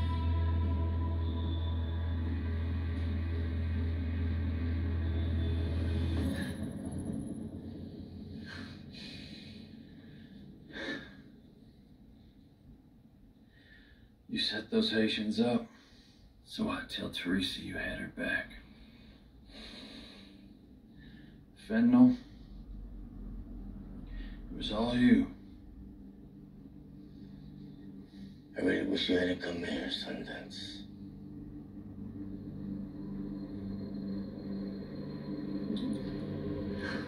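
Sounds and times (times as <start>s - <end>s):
low rumbling drone: 0.0s - 14.1s, 15.9s - 37.0s.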